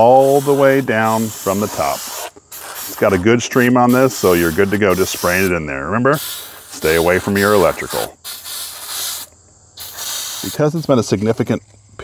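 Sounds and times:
aerosol can spraying: 0.0s - 10.9s.

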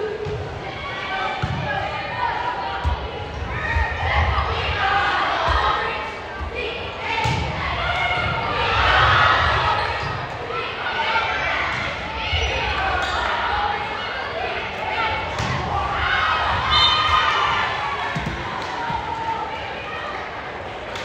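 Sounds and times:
crowd chatter and shouts: 0.0s - 21.0s.

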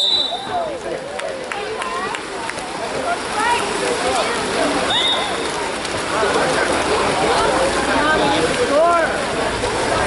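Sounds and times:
water splashing: 0.0s - 10.0s
arms slapping water: 0.8s - 10.0s.

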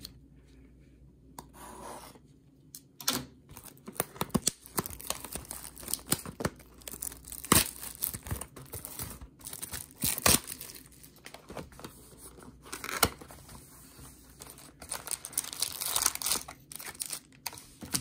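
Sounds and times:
plastic shrink-wrap crinkling: 3.6s - 11.4s, 14.5s - 18.0s.

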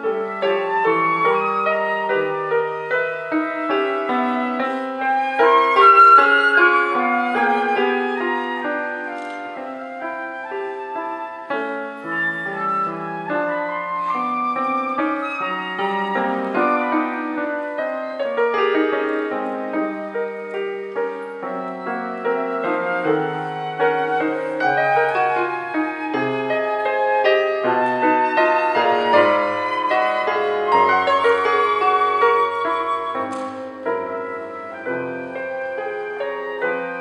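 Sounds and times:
flute solo melody: 0.0s - 37.0s
piano accompaniment: 0.0s - 37.0s.

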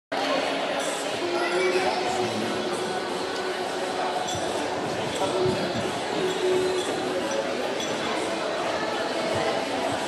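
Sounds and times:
background chatter: 0.1s - 10.0s.

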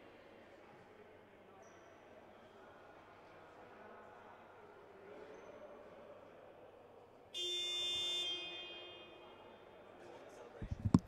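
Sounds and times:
dull thumps: 10.6s - 11.0s.

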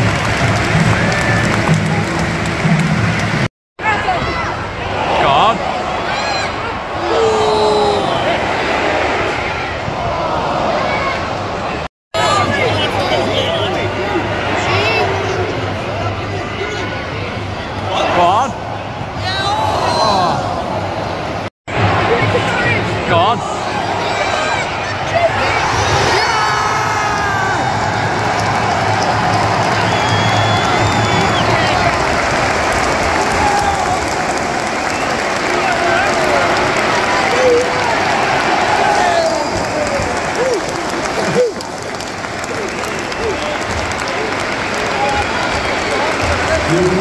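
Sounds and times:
crowd clapping: 0.0s - 3.5s, 27.0s - 47.0s
stadium crowd cheering: 0.0s - 47.0s.

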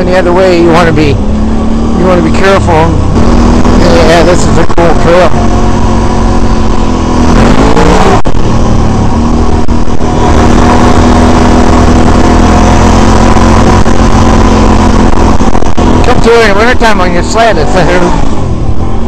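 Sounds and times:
atv engine running: 0.0s - 19.0s.

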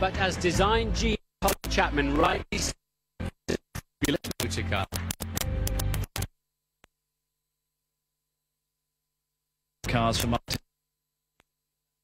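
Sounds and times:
stuttering narration: 3.5s - 5.0s
stuttering background music: 4.0s - 6.3s.

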